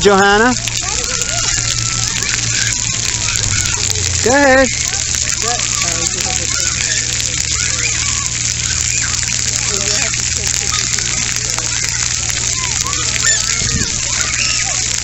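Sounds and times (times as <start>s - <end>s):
water spraying from jets: 0.0s - 15.0s
distant voices of children and adults: 0.6s - 15.0s.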